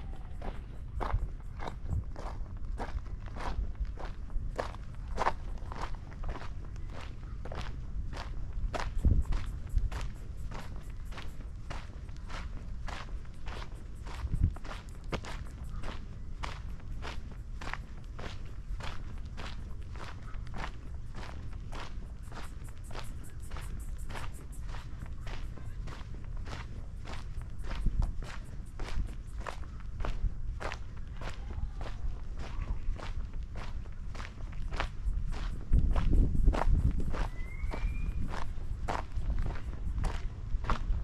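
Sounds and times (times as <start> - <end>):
footsteps crunching on gravel: 0.0 - 41.0.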